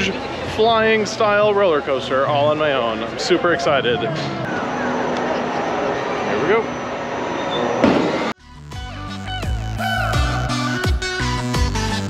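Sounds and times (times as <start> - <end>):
amusement park crowd noise: 0.0 - 8.4
electronic music with beat: 8.4 - 12.0.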